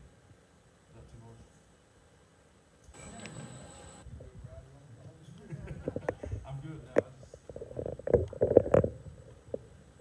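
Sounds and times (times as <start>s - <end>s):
muffled speech: 3.0s - 7.4s.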